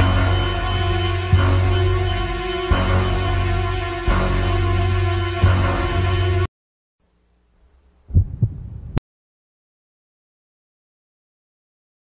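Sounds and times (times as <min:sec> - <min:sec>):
heartbeat thump: 0:08.1 - 0:09.0.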